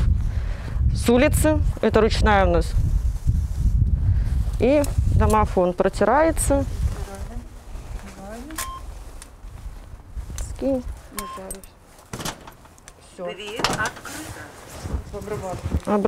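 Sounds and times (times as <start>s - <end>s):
keypad beeps: 8.6s - 8.9s, 11.2s - 11.7s
steel door clicks and knocks: 12.1s - 12.8s, 13.5s - 14.0s.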